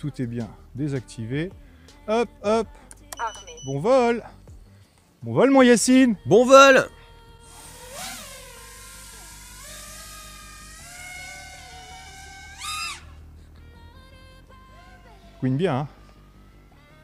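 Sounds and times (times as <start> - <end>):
quadcopter propellers whining: 7.5 - 13.2.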